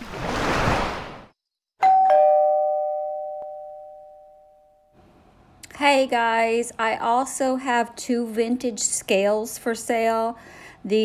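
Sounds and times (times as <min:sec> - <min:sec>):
two-tone doorbell chime: 0:01.8 - 0:04.9.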